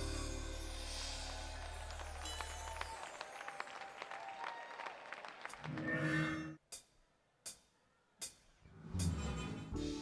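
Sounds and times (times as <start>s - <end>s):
audience clapping and cheering: 0.0s - 5.9s.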